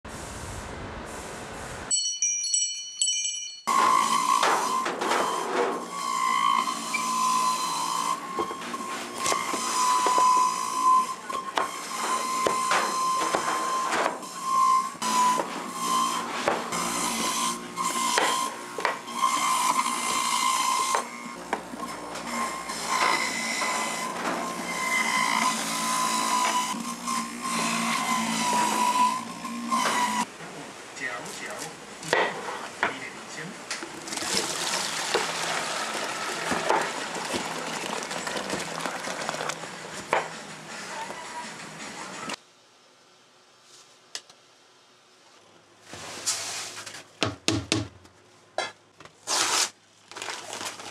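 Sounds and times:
electric juicer whining: 19.2s - 29.0s, 33.8s - 40.3s.

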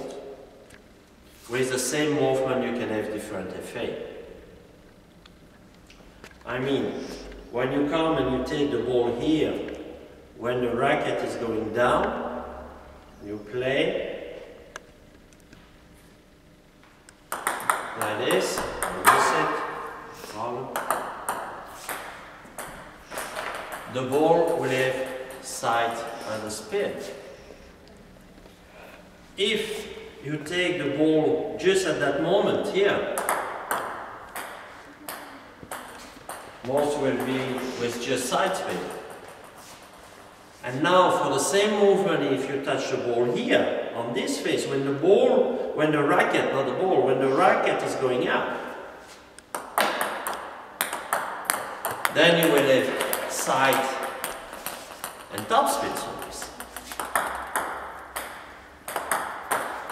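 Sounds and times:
table tennis ball clicks: 17.3s - 19.4s, 49.4s - 59.9s
table tennis ball bouncing: 17.3s - 20.0s, 20.6s - 26.3s, 33.0s - 37.8s, 38.4s - 40.1s, 49.5s - 59.9s.

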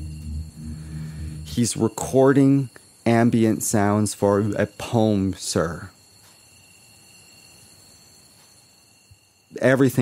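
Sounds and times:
thin high-pitched tones: 0.0s - 2.0s
low steady hiss: 0.0s - 10.0s.

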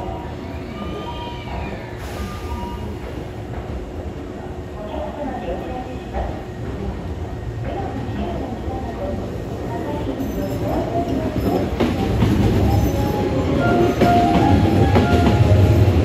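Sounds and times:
train wheels rumbling on rails: 1.0s - 4.8s, 5.8s - 16.0s
train whine: 11.8s - 16.0s.

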